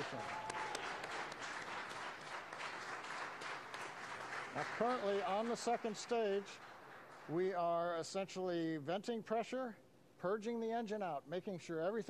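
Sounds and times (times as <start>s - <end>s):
dense applause: 0.0s - 8.0s.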